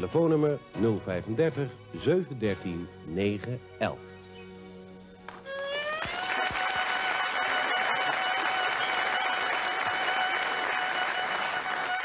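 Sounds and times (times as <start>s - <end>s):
violin long high note: 5.5s - 12.0s
audience applauding: 5.8s - 12.0s.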